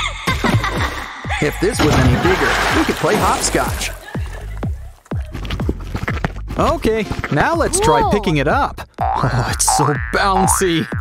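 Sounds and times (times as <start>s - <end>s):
background music: 0.0s - 11.0s
cartoon boing effects: 9.0s - 11.0s.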